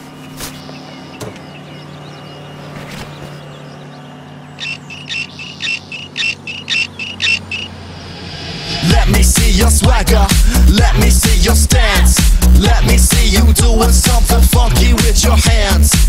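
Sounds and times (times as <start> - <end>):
high chirps: 0.0 - 7.9
steady low hum: 0.0 - 14.0.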